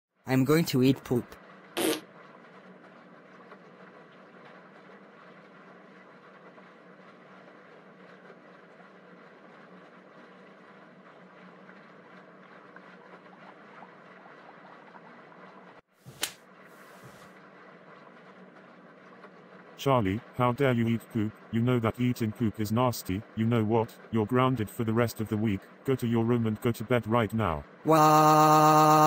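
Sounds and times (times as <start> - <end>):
low background hum: 0.2 - 29.0
sharp click: 16.2 - 16.4.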